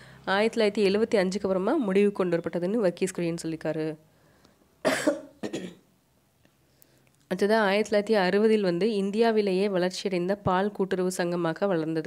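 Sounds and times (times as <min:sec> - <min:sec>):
person coughing: 0:04.8 - 0:05.9.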